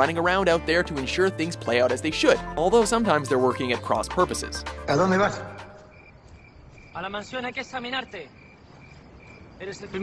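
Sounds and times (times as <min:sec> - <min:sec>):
man speaking: 0:00.0 - 0:05.8, 0:07.0 - 0:08.4, 0:09.6 - 0:10.0
crickets chirping: 0:05.5 - 0:10.0.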